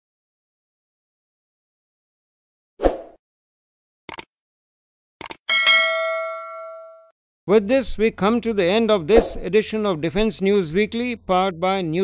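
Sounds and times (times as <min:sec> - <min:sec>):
double mouse click: 0:04.1 - 0:04.3
bright bell ding: 0:05.5 - 0:07.1.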